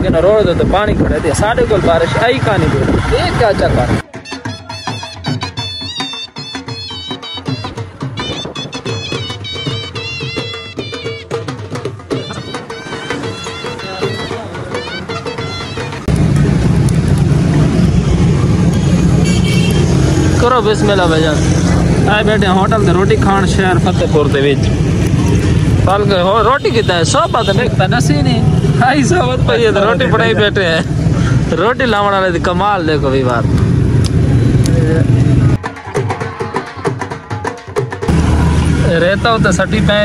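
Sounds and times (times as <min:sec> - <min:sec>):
road traffic rumble: 0:00.0 - 0:04.1, 0:04.7 - 0:35.6, 0:38.0 - 0:40.0
music with wood-block beat: 0:04.0 - 0:16.4, 0:35.6 - 0:38.1
horn toot: 0:18.7 - 0:20.2
low rumble of vehicle passing: 0:38.1 - 0:40.0.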